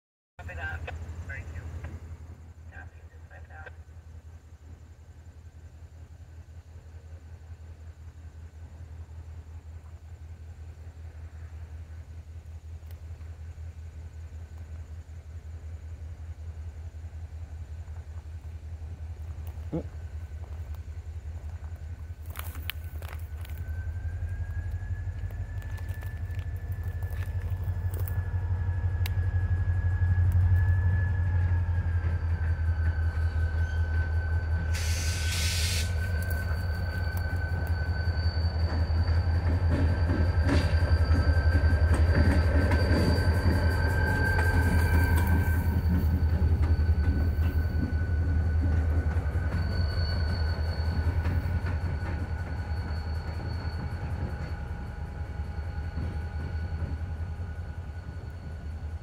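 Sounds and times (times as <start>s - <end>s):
train wheels rumbling on rail: 0.4s - 59.0s
wheels clicking over rail joints: 17.9s - 29.4s
high-pitched wheel flange squeal: 22.2s - 59.0s
brief hiss: 34.7s - 36.0s.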